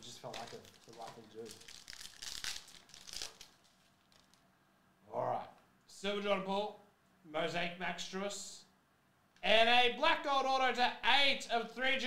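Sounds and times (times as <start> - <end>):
card pack wrapper crinkling: 0.0 - 4.5.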